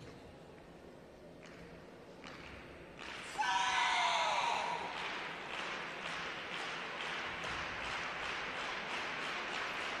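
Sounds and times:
arena crowd noise: 0:00.0 - 0:10.0
spectators clapping: 0:04.8 - 0:10.0.

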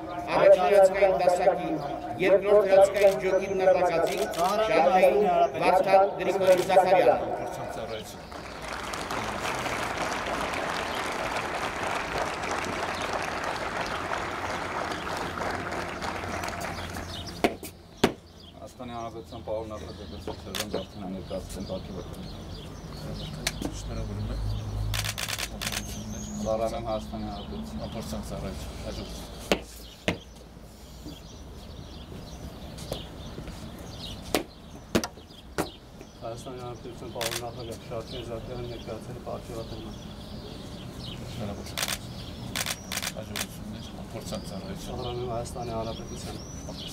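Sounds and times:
crowd applauding: 0:08.2 - 0:17.4.

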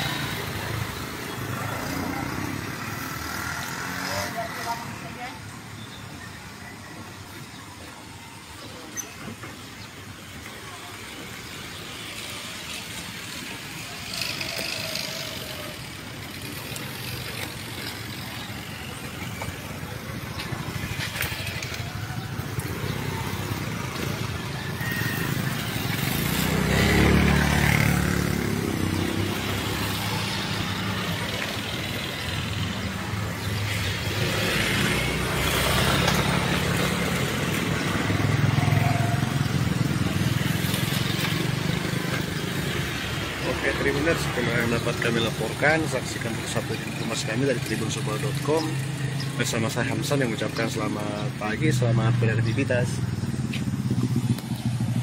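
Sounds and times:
motorcycles passing: 0:00.0 - 0:55.0.

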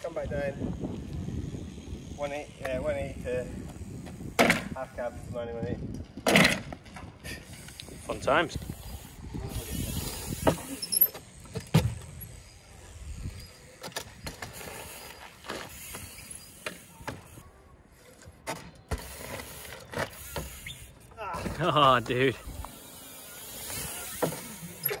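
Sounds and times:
bike tyre rolling on tarmac: 0:00.0 - 0:25.0
sharp knocks and clicks from bike: 0:03.6 - 0:04.8, 0:05.9 - 0:07.2, 0:10.3 - 0:12.4, 0:13.7 - 0:17.4, 0:18.2 - 0:20.8, 0:24.1 - 0:25.0
bike landing on wooden pallet: 0:04.0 - 0:04.8, 0:06.2 - 0:07.1, 0:10.4 - 0:12.3, 0:24.1 - 0:25.0.

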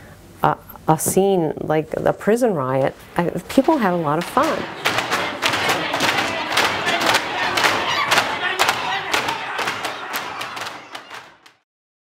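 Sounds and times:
trays banging on tables: 0:03.2 - 0:11.4
crowd yelling: 0:03.6 - 0:11.6.

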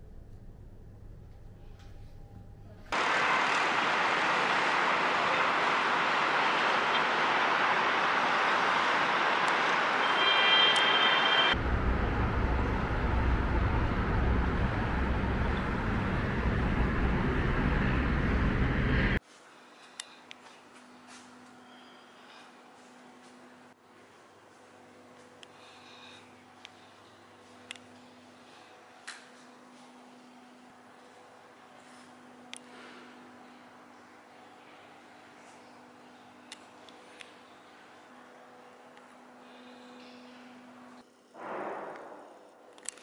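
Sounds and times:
city traffic noise: 0:03.0 - 0:19.2
deep rumble: 0:11.6 - 0:19.2.

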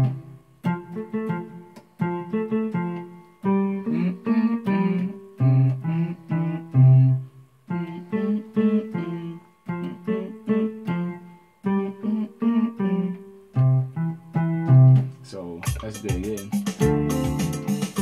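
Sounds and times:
electronic keyboard chord stabs: 0:00.0 - 0:18.0.

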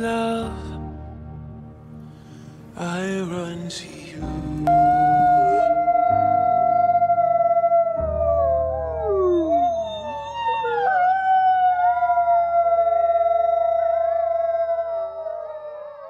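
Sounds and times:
wolves howling: 0:04.7 - 0:16.0.

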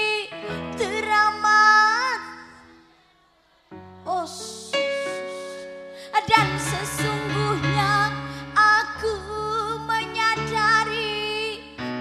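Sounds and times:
sustained backing chords: 0:03.8 - 0:12.0.

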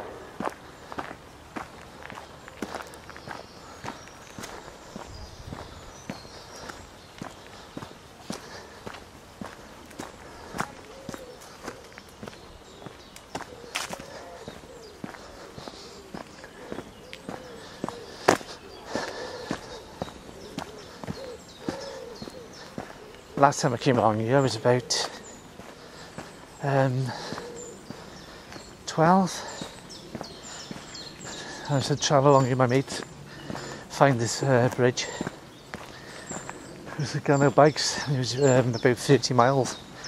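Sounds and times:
footsteps on dirt path: 0:00.0 - 0:40.0.

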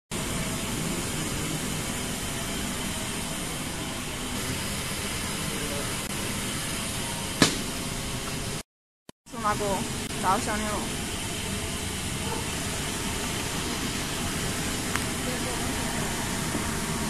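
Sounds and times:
conveyor and rollers running: 0:00.1 - 0:08.6, 0:09.4 - 0:17.0.

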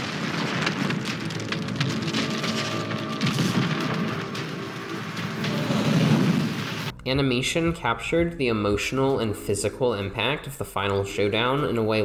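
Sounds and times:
deep thunder-like impact rumble: 0:00.0 - 0:07.0.

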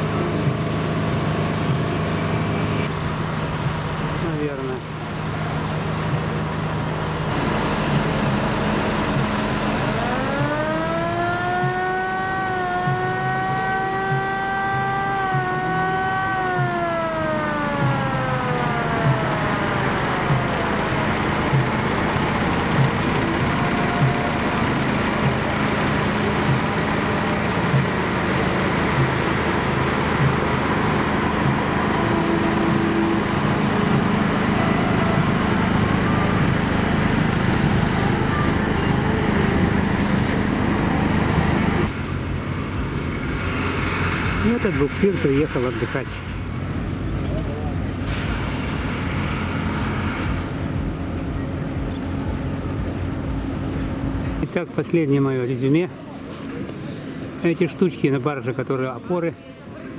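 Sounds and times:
motor engine passing: 0:00.0 - 0:54.4.

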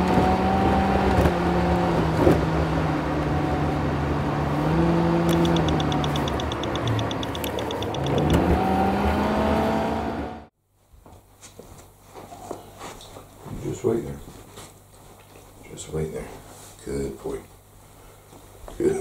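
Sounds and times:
car engine and road noise: 0:00.0 - 0:10.6
rapid high ticking: 0:05.3 - 0:08.4.

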